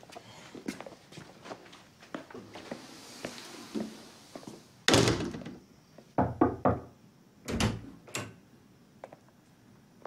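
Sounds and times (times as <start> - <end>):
door thudding shut: 4.9 - 5.6
knocks on wooden door: 6.2 - 6.9.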